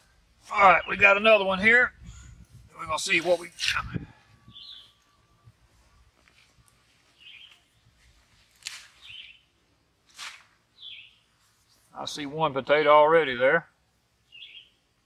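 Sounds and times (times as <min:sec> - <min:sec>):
rustle of soil and leaves: 0:02.4 - 0:03.9, 0:04.6 - 0:13.3
faint bird chirps: 0:04.2 - 0:08.0, 0:10.8 - 0:11.8, 0:14.3 - 0:14.8.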